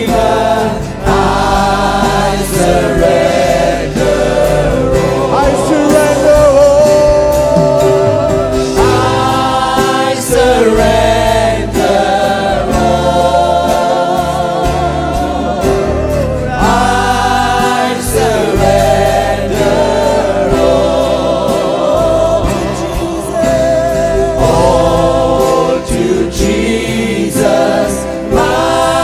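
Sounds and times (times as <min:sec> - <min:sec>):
band playing: 0:00.0 - 0:29.0
singers holding long notes: 0:00.0 - 0:29.0.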